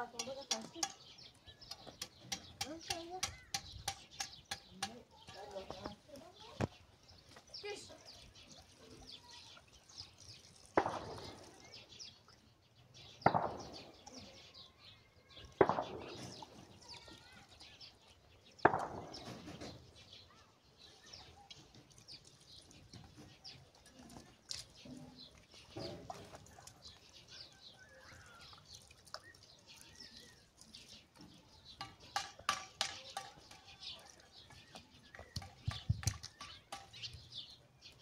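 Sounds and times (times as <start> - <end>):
water splashing on concrete: 0.0 - 12.3, 15.4 - 19.9, 21.1 - 37.3
birds chirping: 0.0 - 38.0.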